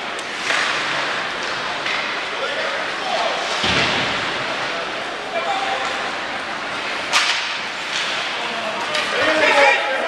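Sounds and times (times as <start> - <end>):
ice rink hubbub with voices: 0.0 - 10.0.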